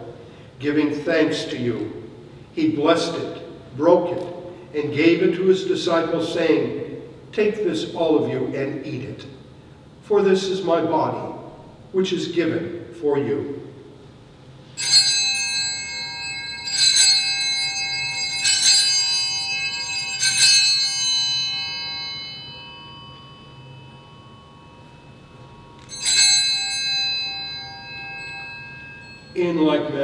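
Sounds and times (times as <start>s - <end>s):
altar bell ringing: 14.6s - 30.0s.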